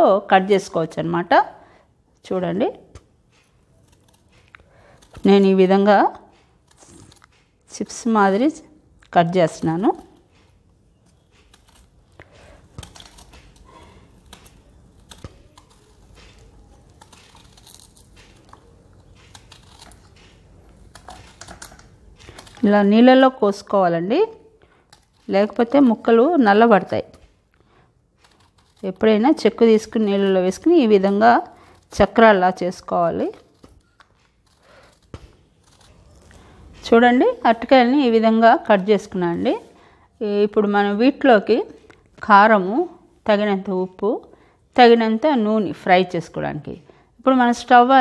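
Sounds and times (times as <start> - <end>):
woman speaking: 0.0 - 1.6, 2.2 - 2.9, 5.2 - 6.3, 7.7 - 10.1, 22.6 - 24.4, 25.3 - 27.2, 28.8 - 33.4, 36.8 - 48.0
knife cutting banana: 3.0 - 23.3, 28.2 - 38.4.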